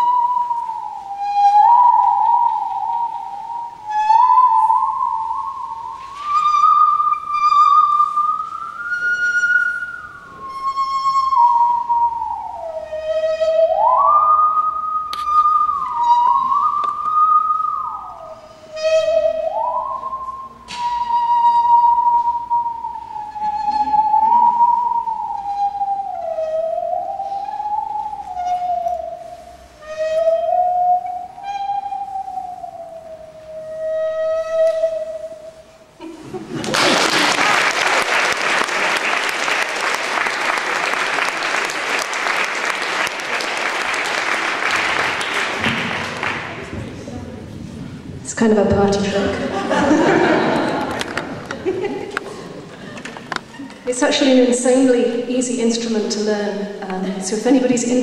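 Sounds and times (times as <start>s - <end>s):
bowed musical saw: 0.0s - 36.4s
audience applauding: 36.5s - 46.7s, 50.0s - 53.8s.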